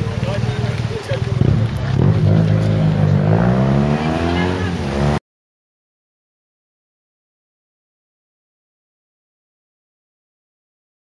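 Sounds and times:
car engine accelerating: 0.0s - 5.2s.

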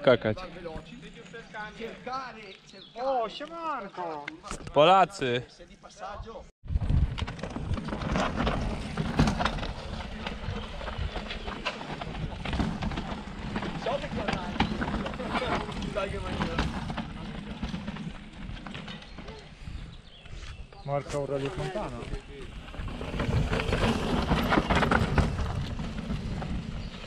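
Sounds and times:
wind rumble on microphone: 6.2s - 17.5s.

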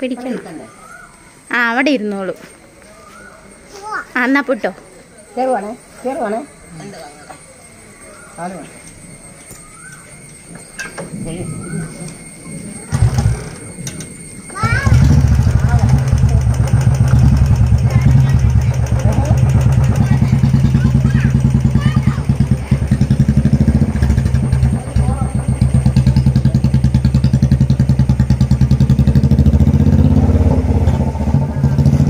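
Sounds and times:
motorcycle engine pulling away: 10.9s - 32.0s.

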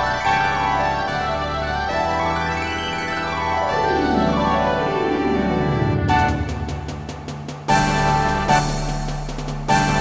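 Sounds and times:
computer orchestral music: 0.0s - 10.0s.

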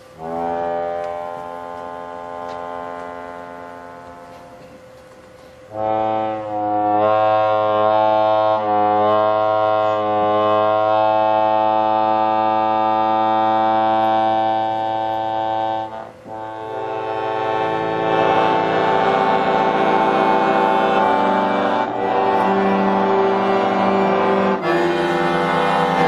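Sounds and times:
piano accordion playing: 0.0s - 5.0s, 5.7s - 26.0s.

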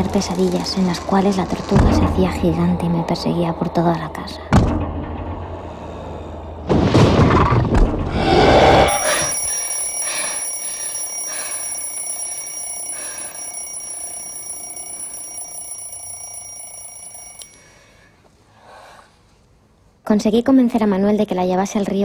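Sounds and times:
high ringing tones: 8.8s - 18.0s.

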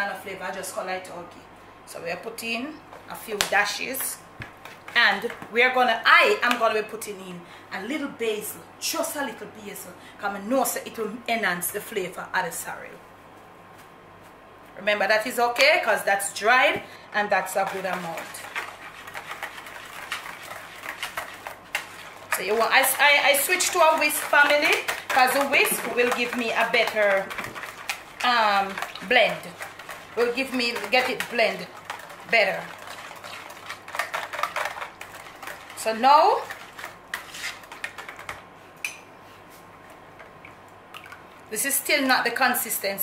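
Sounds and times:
liquid swishing: 17.4s - 38.4s
whisk clicking against plastic bowl: 17.5s - 38.4s.

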